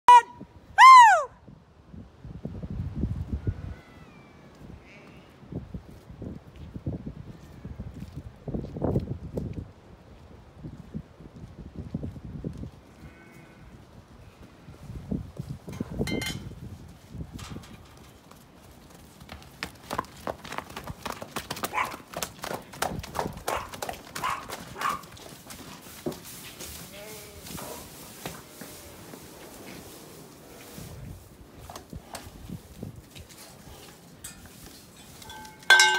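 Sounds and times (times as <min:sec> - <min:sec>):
horse hoofbeats on grass: 0:10.6 - 0:35.9.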